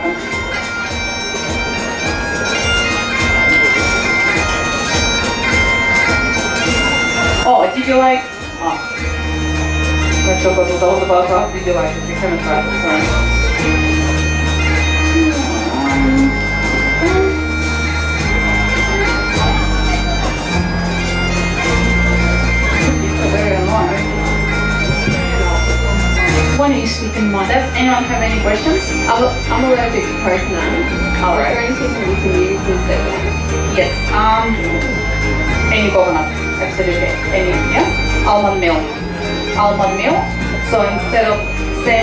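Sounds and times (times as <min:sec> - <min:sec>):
bagpipe drones: 0:00.0 - 0:42.0
bagpipe melody: 0:00.0 - 0:42.0.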